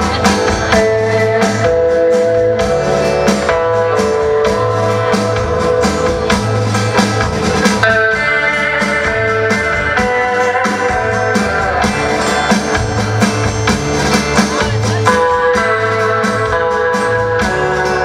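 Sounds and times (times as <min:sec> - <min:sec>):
electric guitar melody: 0:00.0 - 0:18.0
steady drum beat: 0:00.0 - 0:18.0
strummed rhythm guitar: 0:00.0 - 0:18.0
upright double bass: 0:00.0 - 0:18.0.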